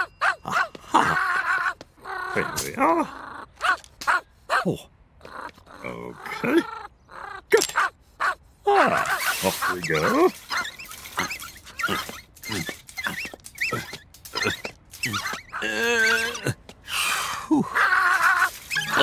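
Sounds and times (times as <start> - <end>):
cartoon small dog yapping: 0.0 - 16.4, 17.6 - 19.0.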